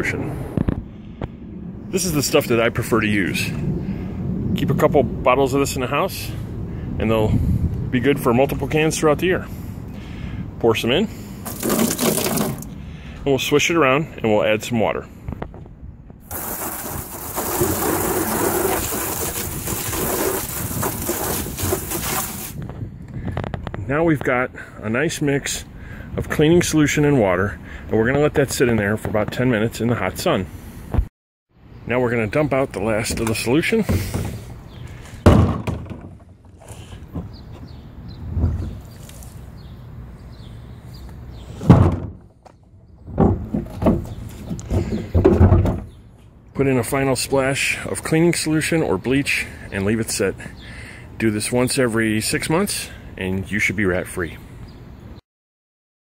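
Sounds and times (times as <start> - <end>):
hose spray hitting plastic: 11.4 - 12.6, 16.2 - 22.6
liquid pouring out: 11.4 - 12.7, 16.3 - 22.5
hollow thunks of plastic cart: 35.2 - 36.3, 41.6 - 46.0.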